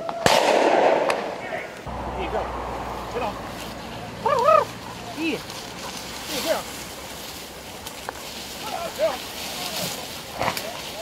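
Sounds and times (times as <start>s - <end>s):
sharp crack: 0.0s - 2.5s, 9.6s - 11.0s
undergrowth rustling and crackling: 0.2s - 11.0s
short wordless calls: 1.5s - 11.0s.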